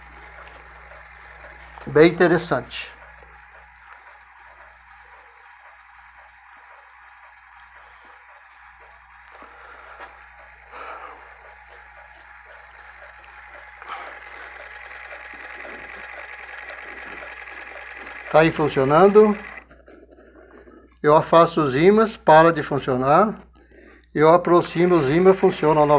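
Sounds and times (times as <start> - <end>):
small rotor ticking and whirring: 0.0 - 25.9.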